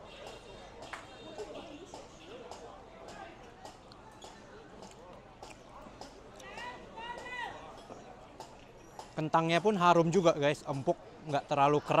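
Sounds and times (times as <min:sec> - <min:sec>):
street chatter: 0:00.0 - 0:12.0.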